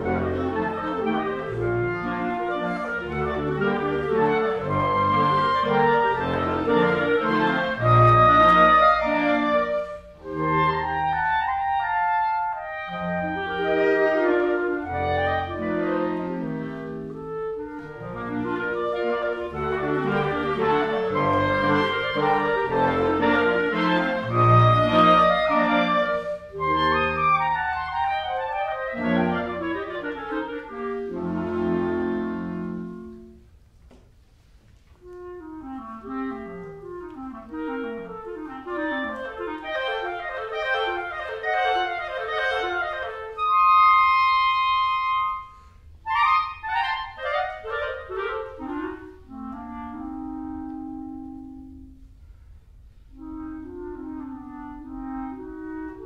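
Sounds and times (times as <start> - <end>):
clarinet choir accompanying: 0.0 - 56.0
clarinets playing classical duet: 0.0 - 56.0.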